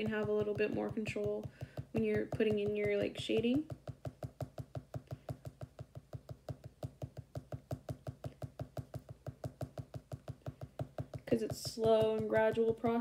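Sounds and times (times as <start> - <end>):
pen tapping dots on paper: 0.0 - 13.0.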